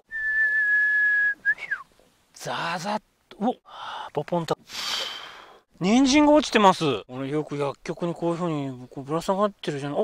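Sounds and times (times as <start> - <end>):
falling whistle: 0.1 - 1.9.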